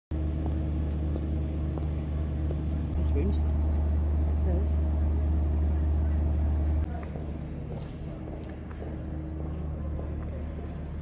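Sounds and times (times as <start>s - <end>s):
faint engine hum: 0.1s - 11.0s
urban traffic rumble: 0.1s - 11.0s.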